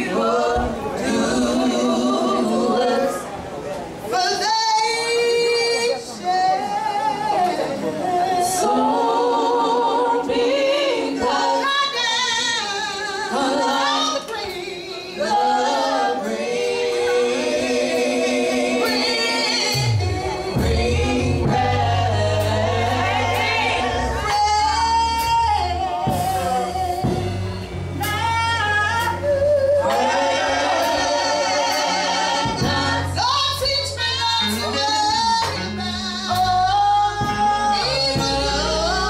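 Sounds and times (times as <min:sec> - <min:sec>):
women singing in harmony: 0:00.0 - 0:39.0
bass guitar: 0:17.1 - 0:39.0.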